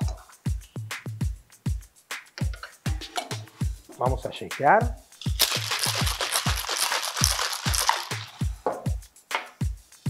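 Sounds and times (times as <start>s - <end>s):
background music with steady beat: 0.0s - 10.0s
ice rattling in cocktail shaker: 5.2s - 8.5s.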